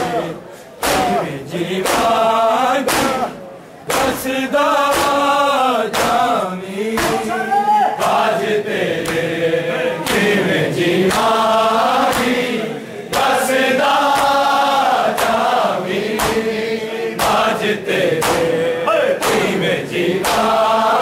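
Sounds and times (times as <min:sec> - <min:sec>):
men chanting together: 0:00.0 - 0:21.0
hands striking chests: 0:00.8 - 0:02.2, 0:02.8 - 0:04.2.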